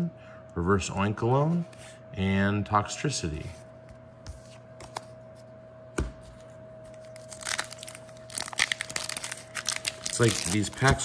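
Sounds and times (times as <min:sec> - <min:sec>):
foil wrapper tearing and crinkling: 0:07.1 - 0:11.0.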